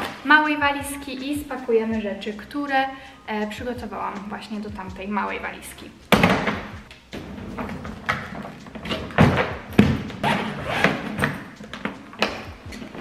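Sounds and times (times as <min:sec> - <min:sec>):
suitcase thumps on wooden floor: 0:06.1 - 0:06.8, 0:07.6 - 0:12.8
suitcase unzipping: 0:06.2 - 0:13.0.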